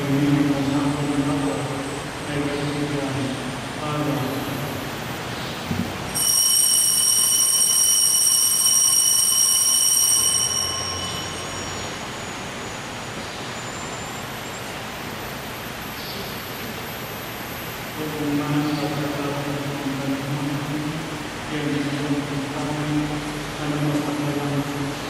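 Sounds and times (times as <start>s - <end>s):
altar bells ringing: 6.1s - 14.4s.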